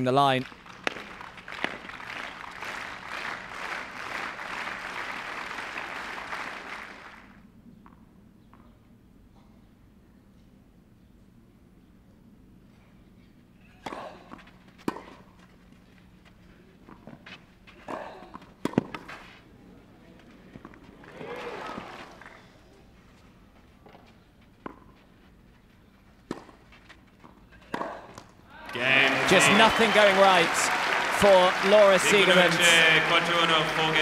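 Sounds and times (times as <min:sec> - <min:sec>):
crowd cheering and applauding: 0:00.4 - 0:07.4, 0:28.6 - 0:34.0
tennis ball struck by racquets: 0:00.8 - 0:01.9, 0:17.8 - 0:19.1, 0:26.3 - 0:26.6.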